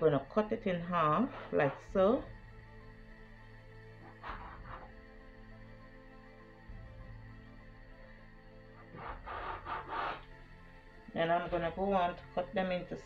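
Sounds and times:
background music: 0:00.0 - 0:13.0
metal scraper scraping dough: 0:01.2 - 0:02.2, 0:04.0 - 0:05.0, 0:08.8 - 0:10.3.

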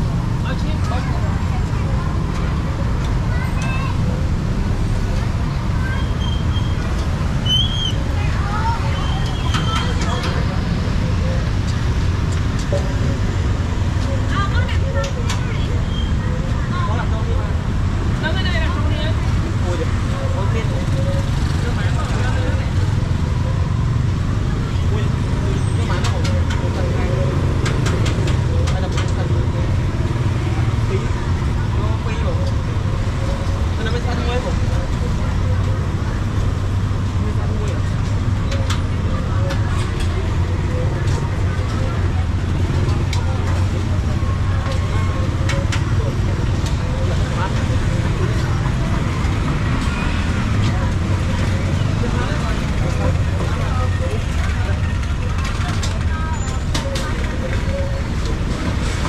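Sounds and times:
indistinct background chatter: 0:00.0 - 0:59.0
low rumble of road traffic: 0:00.0 - 0:59.0.

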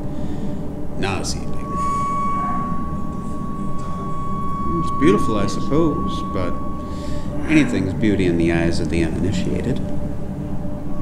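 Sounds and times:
low drone: 0:00.0 - 0:11.0
high ringing tone: 0:00.7 - 0:11.0.

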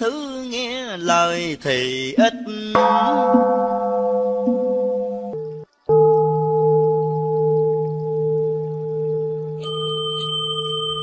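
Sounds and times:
sustained ringing drone music: 0:02.8 - 0:11.0.

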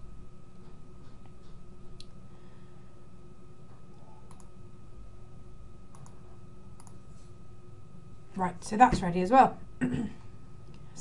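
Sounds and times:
faint room hum: 0:00.0 - 0:11.0
computer mouse clicking: 0:04.2 - 0:04.5, 0:05.9 - 0:06.2, 0:06.8 - 0:07.0.

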